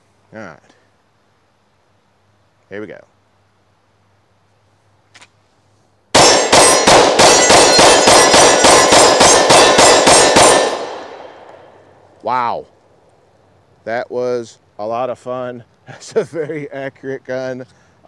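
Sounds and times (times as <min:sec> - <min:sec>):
pistol shots: 0:06.1 - 0:11.7
steel targets clanging: 0:06.2 - 0:11.2.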